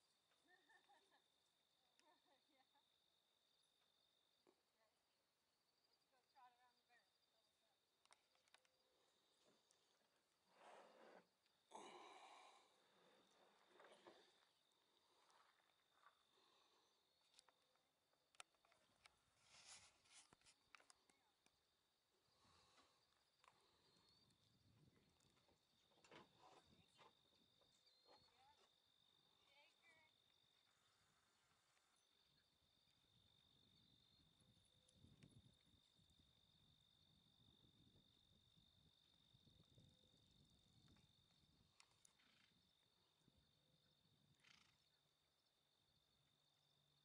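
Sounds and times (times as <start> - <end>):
faint clicks: 8.0 - 8.8, 18.3 - 19.2, 41.8 - 42.6.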